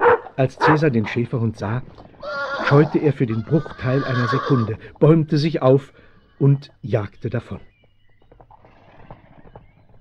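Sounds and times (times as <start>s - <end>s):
horse hooves galloping: 1.4s - 5.6s, 6.4s - 10.0s.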